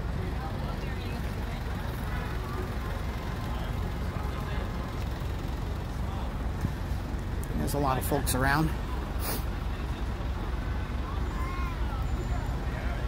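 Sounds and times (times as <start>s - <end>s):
city traffic rumble: 0.0s - 13.0s
faint voices: 0.0s - 13.0s.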